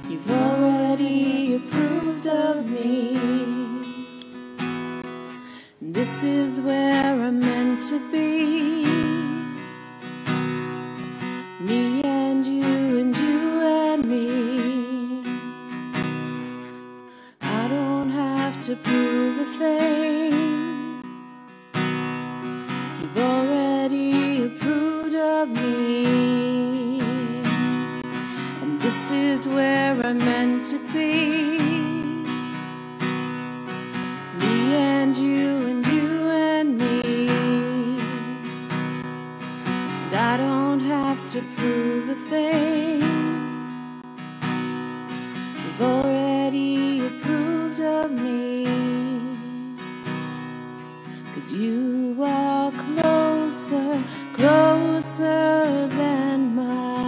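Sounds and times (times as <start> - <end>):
woman singing: 0.0 - 4.6, 5.3 - 10.4, 11.2 - 21.4, 22.7 - 57.0
acoustic guitar strumming: 0.0 - 57.0.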